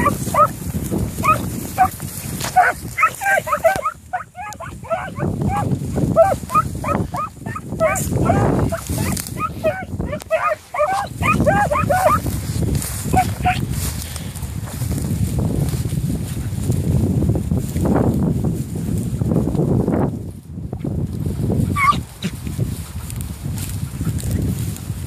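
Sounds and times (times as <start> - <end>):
hounds barking: 0.0 - 0.6, 1.2 - 12.4, 13.1 - 13.7, 21.8 - 22.0
wind buffeting microphone: 0.0 - 25.0.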